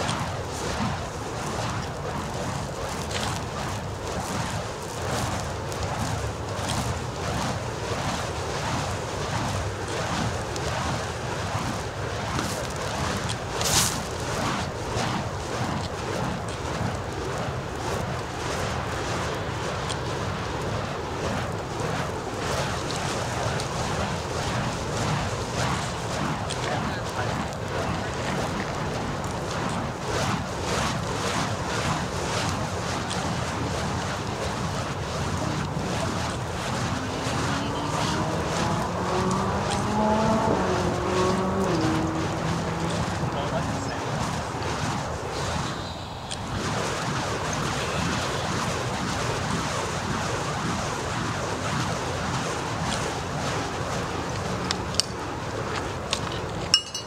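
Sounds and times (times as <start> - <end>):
fire poi whooshing: 0.0 - 56.8
steady rushing noise: 0.0 - 57.0.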